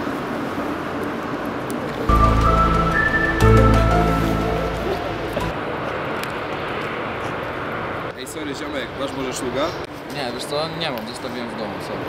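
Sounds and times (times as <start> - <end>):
rushing outdoor background noise: 0.0 - 12.0
background music: 2.1 - 5.6.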